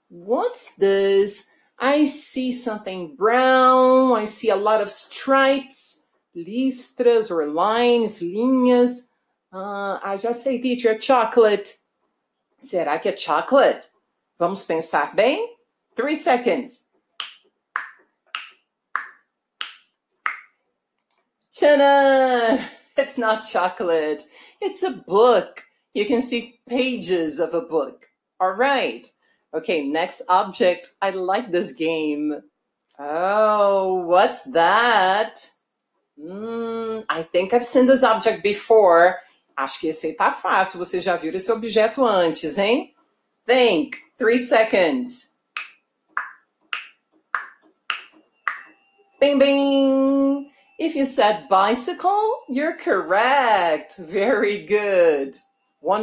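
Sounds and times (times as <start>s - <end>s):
finger snaps: 17.2s - 20.5s, 45.6s - 48.7s
countdown timer ticking: 45.6s - 48.8s.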